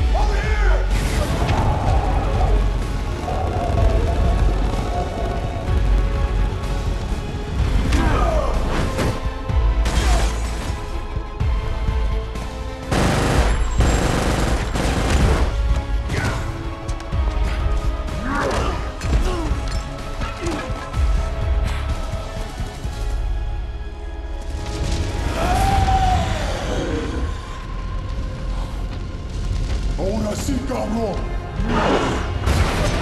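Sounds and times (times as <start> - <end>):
film score music: 0.0 - 33.0
crackling and booming battle effects: 0.8 - 11.0, 12.8 - 16.8, 24.5 - 33.0.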